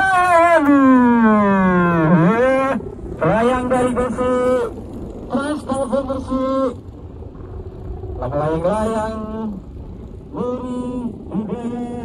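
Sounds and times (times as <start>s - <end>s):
man announcing over loudspeakers: 0.0s - 6.8s, 8.2s - 9.6s, 10.3s - 12.0s.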